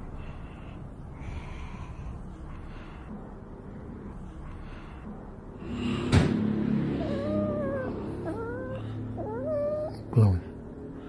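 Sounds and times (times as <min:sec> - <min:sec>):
cat meowing: 0:07.0 - 0:10.0.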